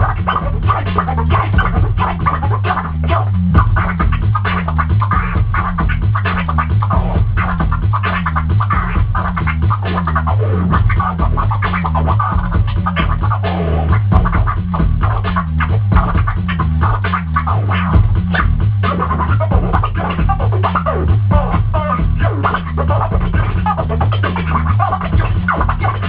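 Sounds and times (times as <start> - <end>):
looping hip-hop beat with bass: 0.0 - 26.0
turntable scratching: 0.0 - 26.0.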